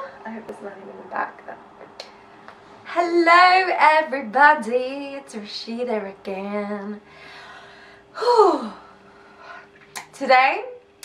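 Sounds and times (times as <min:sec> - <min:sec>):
woman sighing: 0:07.2 - 0:09.6.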